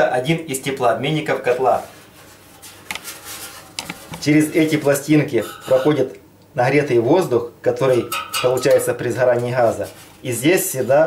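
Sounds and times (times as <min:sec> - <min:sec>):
soft handling rustle: 0:01.2 - 0:06.0, 0:08.8 - 0:11.0
metal heat exchanger clicks: 0:07.9 - 0:09.6.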